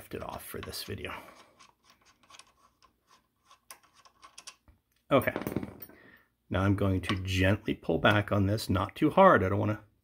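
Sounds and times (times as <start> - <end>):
small parts clicking and scraping: 0.0 - 5.0.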